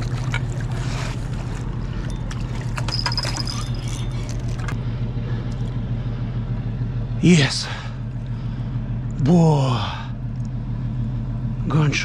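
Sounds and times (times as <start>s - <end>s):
barge diesel engine droning: 0.0s - 12.0s.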